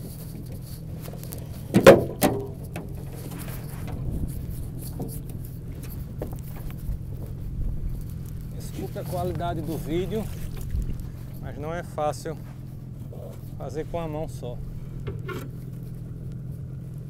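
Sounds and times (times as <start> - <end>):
steady low hum: 0.0 - 17.0
metal anchor clanging on boat: 1.7 - 4.0.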